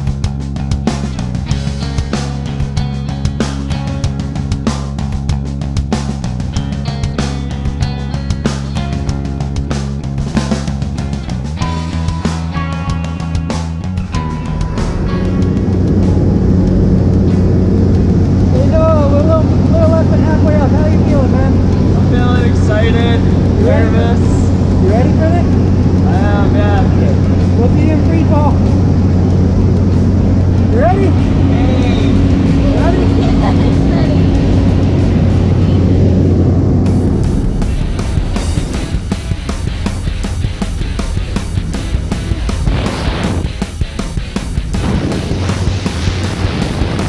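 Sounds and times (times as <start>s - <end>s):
propeller engine droning: 0.0s - 47.0s
voices: 18.5s - 36.5s.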